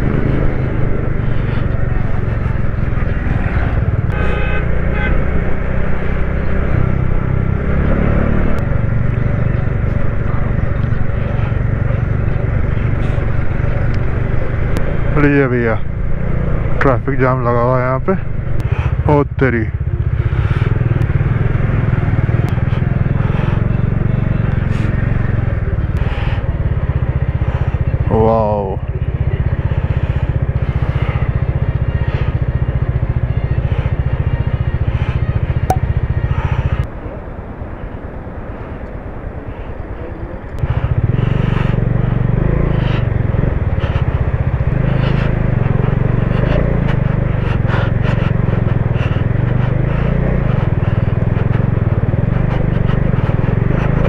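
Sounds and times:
motorcycle engine rumbling: 0:00.0 - 0:54.0
clatter and knocks on rocky road: 0:43.8 - 0:54.0.

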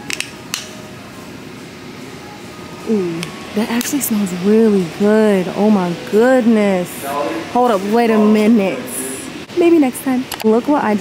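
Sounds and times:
low store background: 0:00.0 - 0:11.0.

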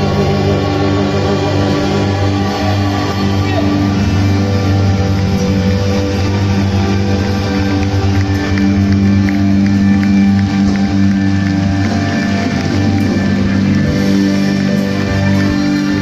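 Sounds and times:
live ensemble music: 0:00.0 - 0:16.0.

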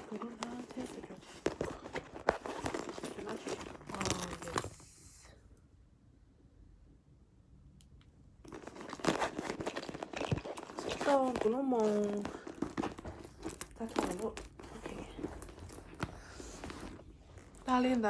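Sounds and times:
crinkling and rustling: 0:00.0 - 0:05.2, 0:08.4 - 0:18.0.

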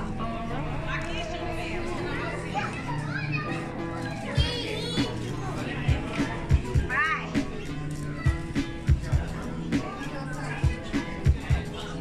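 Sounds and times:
background music with held notes: 0:00.0 - 0:12.0
children chattering and calling out: 0:00.0 - 0:12.0.

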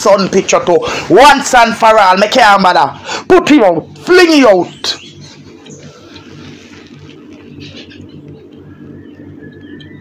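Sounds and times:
quiet bird calls: 0:04.6 - 0:10.0.

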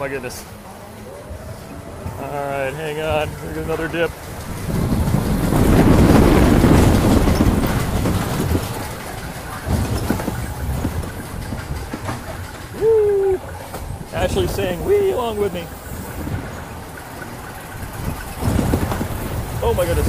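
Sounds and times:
coaster car rumbling on track: 0:00.0 - 0:20.0
voice-like call: 0:12.8 - 0:13.6.

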